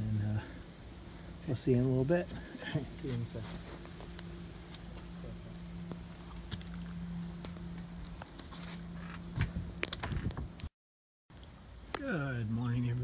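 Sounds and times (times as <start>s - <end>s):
steady low hum: 0.0s - 10.7s.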